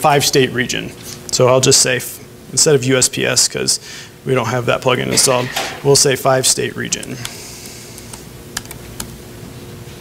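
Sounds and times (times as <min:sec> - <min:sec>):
laptop keystrokes: 0:08.0 - 0:09.2.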